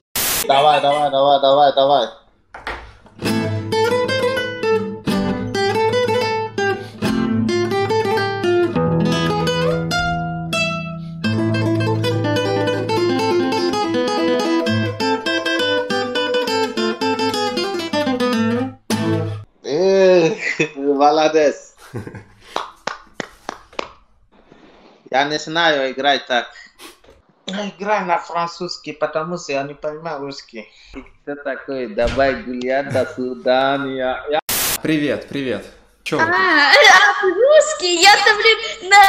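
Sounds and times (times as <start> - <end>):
voice exclaiming: 0.4 - 1.2
fingerstyle acoustic guitar: 3.2 - 19.4.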